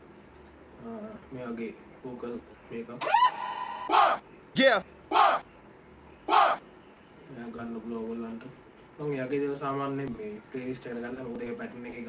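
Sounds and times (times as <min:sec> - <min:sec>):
shouted vocal ad-lib: 0:03.0 - 0:05.4, 0:06.3 - 0:06.6
quiet voice: 0:04.6 - 0:05.4.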